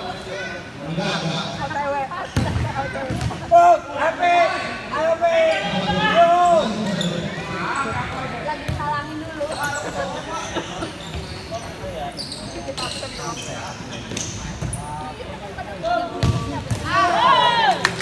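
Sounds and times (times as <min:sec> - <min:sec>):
people shouting in a hall: 0:16.8 - 0:18.0.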